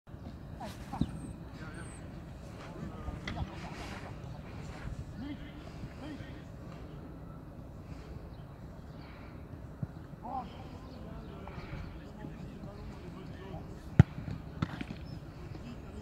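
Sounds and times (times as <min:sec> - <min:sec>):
low background noise: 0:00.1 - 0:16.0
distant indistinct voices: 0:00.2 - 0:16.0.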